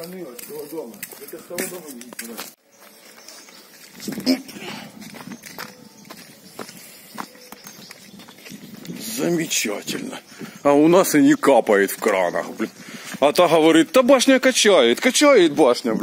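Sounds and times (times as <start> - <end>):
person speaking: 0.0 - 2.6
footsteps on wet ground: 0.0 - 15.8.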